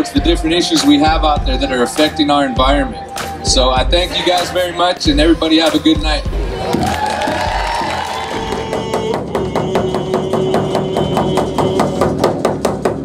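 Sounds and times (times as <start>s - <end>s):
frame drums beating: 0.0s - 1.9s, 2.6s - 4.4s, 5.1s - 13.0s.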